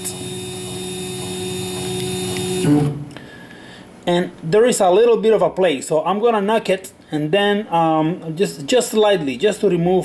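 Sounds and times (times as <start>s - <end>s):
stepper motor hum: 0.0s - 3.0s.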